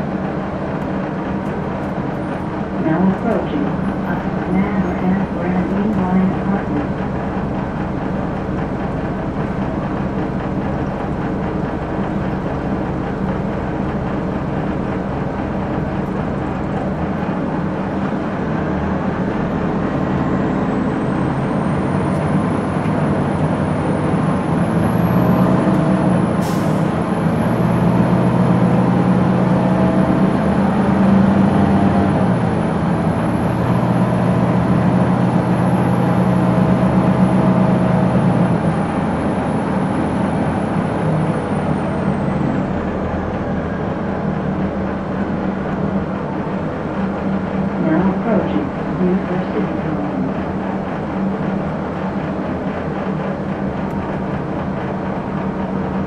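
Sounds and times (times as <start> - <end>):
diesel bus engine idling: 0.0 - 56.0.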